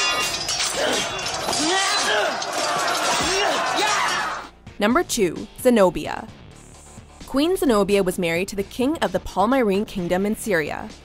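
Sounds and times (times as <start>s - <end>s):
swords clashing: 0.0s - 4.4s
men shouting: 0.0s - 4.5s.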